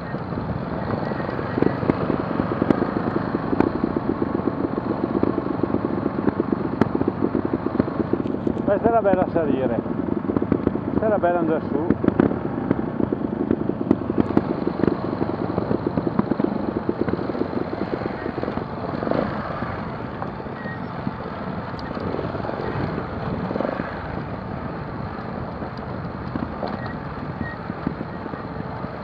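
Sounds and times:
motorcycle engine at low revs: 0.0s - 29.0s.

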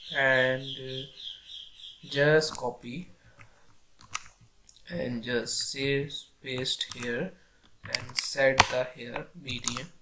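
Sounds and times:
keyboard and mouse clicks: 2.4s - 2.8s, 3.4s - 4.8s, 6.5s - 7.2s, 7.8s - 10.0s.

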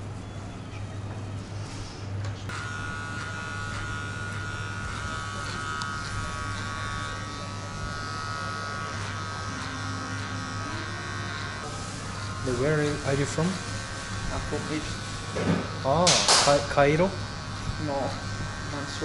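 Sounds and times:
electric hair clippers buzzing: 2.5s - 19.0s.

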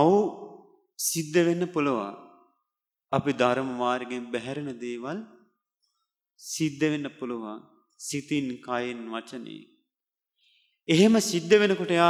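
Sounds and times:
man speaking into a microphone: 0.0s - 2.4s, 3.1s - 5.4s, 6.4s - 9.8s, 10.8s - 12.0s.

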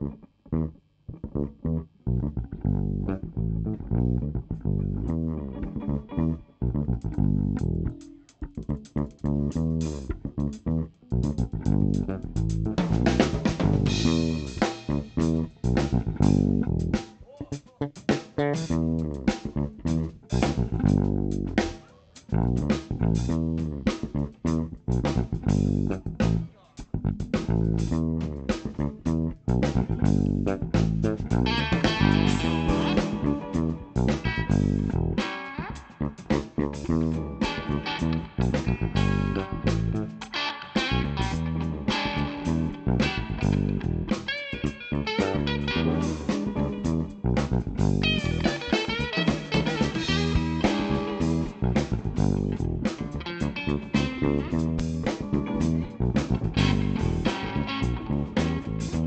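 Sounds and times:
bass guitar: 0.0s - 59.0s
electric guitars: 2.3s - 9.0s, 9.9s - 17.1s, 18.3s - 21.9s, 29.7s - 59.0s
drum kit: 7.1s - 59.0s.

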